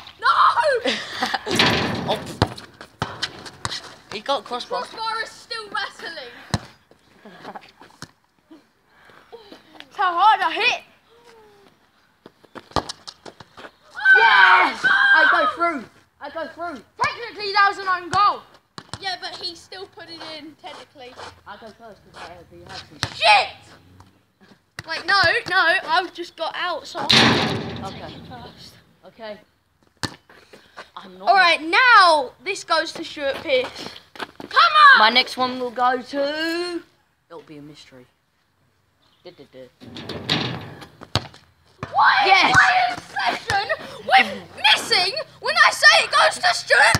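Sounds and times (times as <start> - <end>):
quick footsteps on hard court: 2.4 - 5.1.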